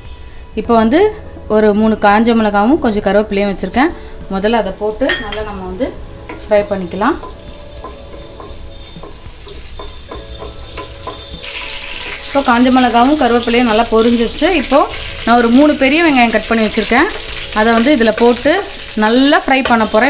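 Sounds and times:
spices sizzling in hot oil: 5.0 - 20.0.

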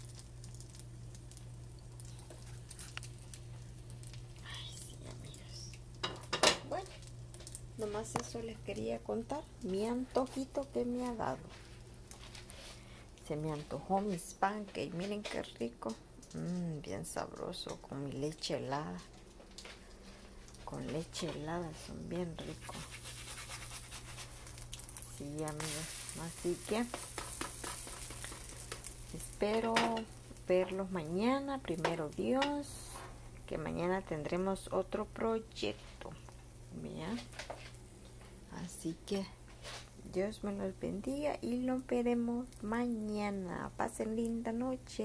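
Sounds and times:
batter sizzling in a pan: 0.0 - 14.6, 15.2 - 45.0
steady low hum: 0.0 - 45.0
spatula scraping frying pan: 22.4 - 24.6, 25.6 - 29.0.

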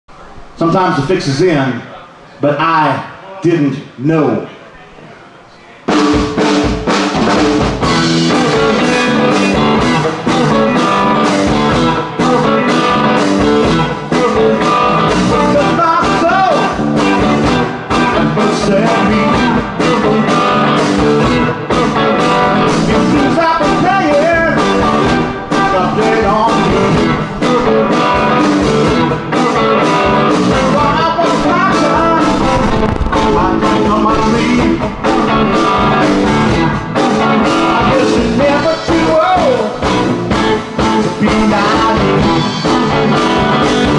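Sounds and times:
blues-rock band playing: 5.9 - 43.9.

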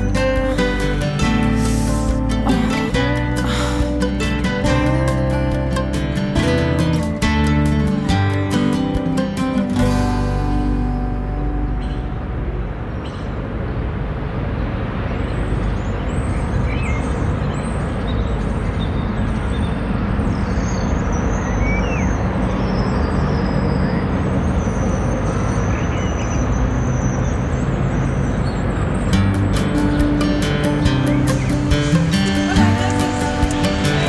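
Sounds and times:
music: 0.0 - 12.6, 29.0 - 34.0
street traffic noise: 0.0 - 34.0.

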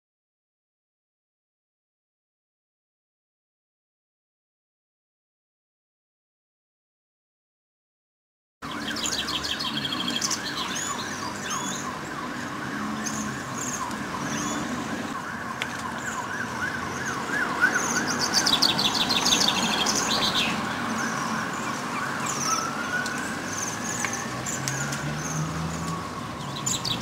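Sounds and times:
high ringing bird trills: 8.6 - 12.1, 12.8 - 14.7, 16.0 - 25.5
wavering bird chirps: 8.6 - 27.0.

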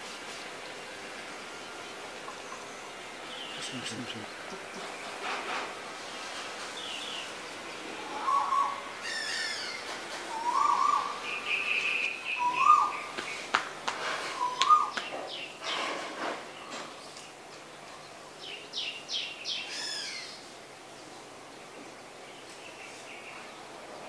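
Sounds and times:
warbling bird call: 7.9 - 13.2, 14.3 - 15.0, 19.6 - 20.4
bird chirps: 8.0 - 13.5, 14.3 - 15.8.

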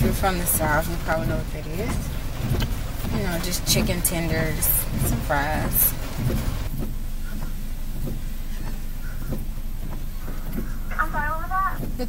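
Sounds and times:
car engine and tyres rumbling: 0.0 - 12.0
faint knocks: 0.0 - 12.0.

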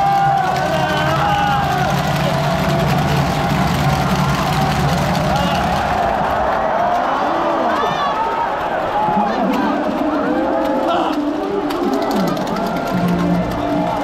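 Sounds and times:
stadium crowd voices calling out: 0.0 - 14.0.

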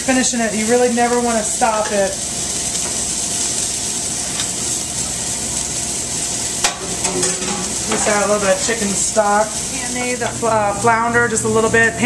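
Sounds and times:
risotto sizzling in a pan: 0.0 - 11.4.

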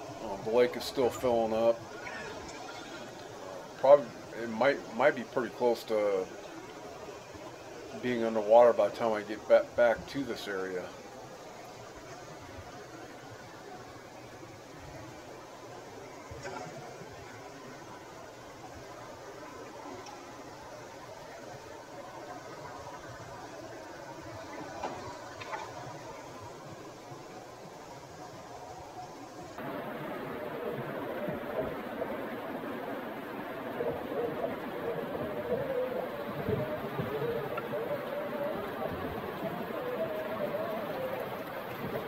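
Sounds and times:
flowing water rushing: 0.0 - 42.0.

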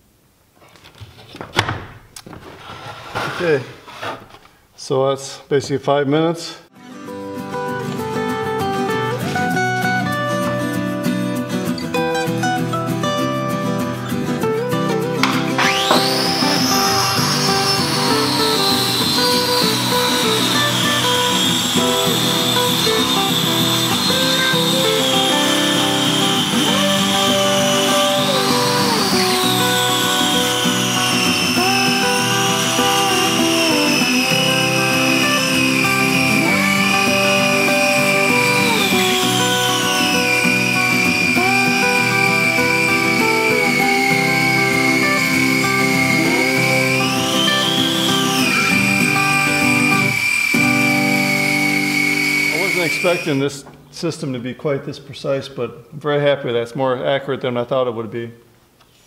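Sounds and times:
man speaking: 3.3 - 3.8, 4.8 - 6.7, 52.5 - 58.4
background music: 6.7 - 49.9
circular saw cutting plywood: 15.2 - 53.5.

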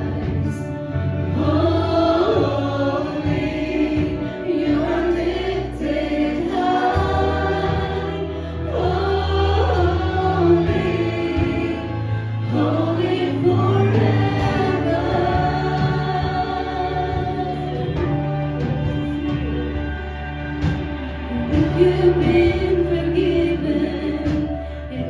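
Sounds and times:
voices singing into microphones: 0.0 - 19.7, 20.7 - 25.0
electric guitar: 0.0 - 25.0
keyboard: 0.0 - 25.0
long held bass notes: 0.0 - 25.0.

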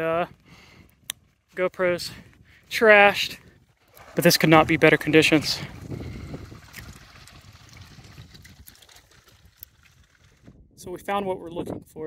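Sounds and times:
water trickling in a stream: 3.8 - 10.5.

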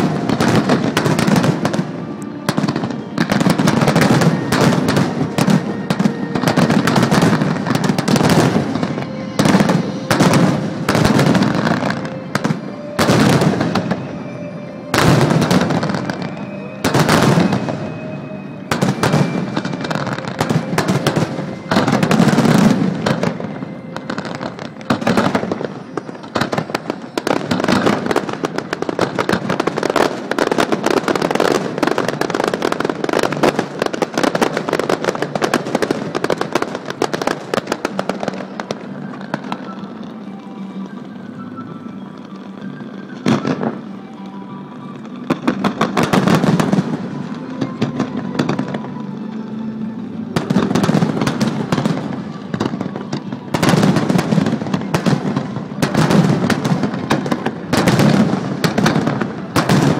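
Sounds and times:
fireworks bangs: 0.0 - 43.9, 50.2 - 59.9
fireworks crackling: 0.0 - 59.9.

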